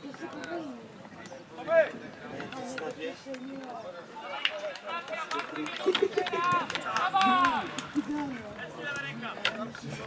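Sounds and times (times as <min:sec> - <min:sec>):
players calling and shouting: 0:00.1 - 0:10.0.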